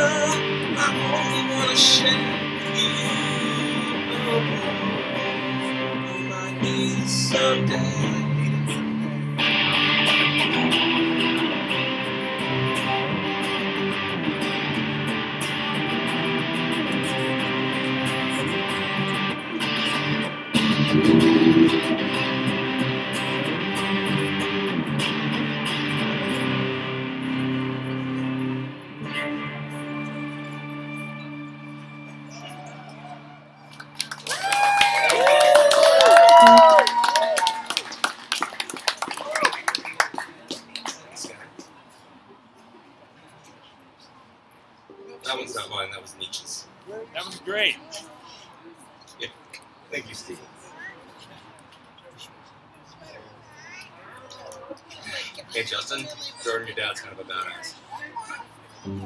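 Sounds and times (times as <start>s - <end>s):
electric guitar through amplifier: 0.0s - 38.7s, 58.8s - 59.0s
audience clapping: 33.6s - 41.8s.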